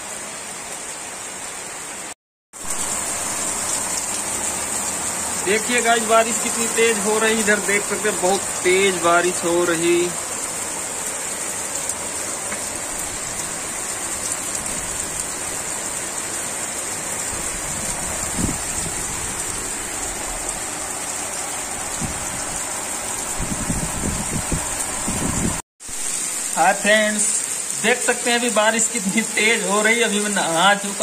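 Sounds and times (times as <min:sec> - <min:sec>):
heavy rain on concrete roof: 0:00.0 - 0:31.0.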